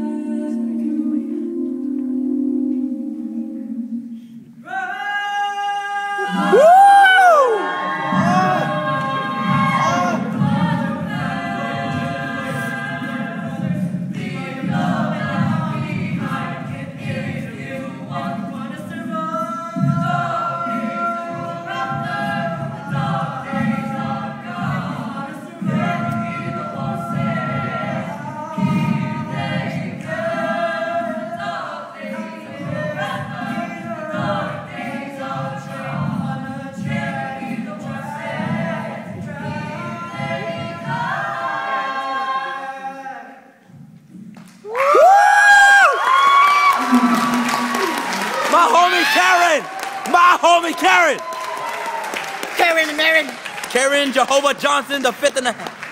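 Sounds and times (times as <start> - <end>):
a cappella group singing: 0.0 - 44.7, 45.8 - 48.5.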